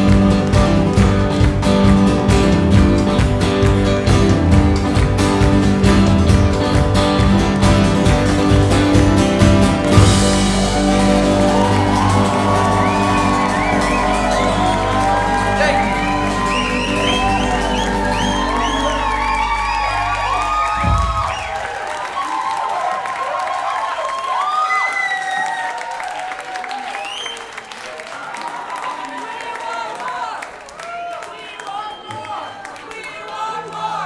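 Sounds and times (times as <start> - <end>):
rock band holding final chord: 0.0 - 21.6
crowd cheering and whistling: 9.8 - 34.0.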